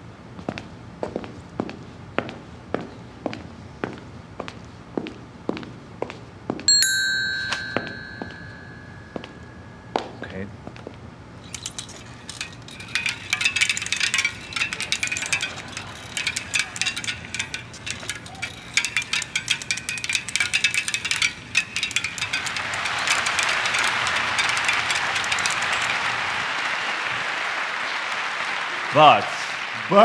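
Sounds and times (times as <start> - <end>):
objects clicking and clinking: 6.8 - 9.4, 11.4 - 26.7
audience applause: 22.4 - 30.0.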